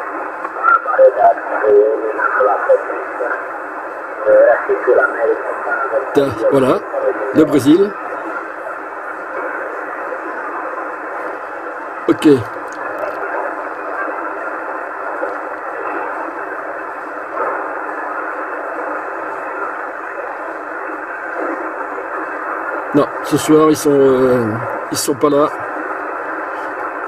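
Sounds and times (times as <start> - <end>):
radio static rush: 0.0 - 27.0.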